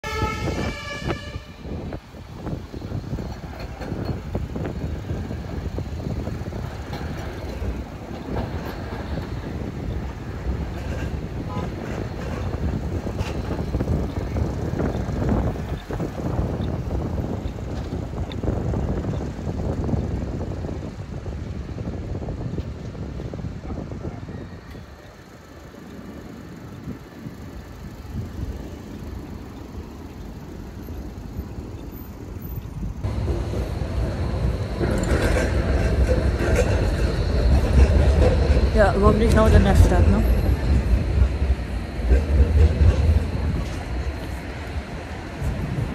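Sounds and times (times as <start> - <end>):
short horn-like tone: 0.0 - 1.7.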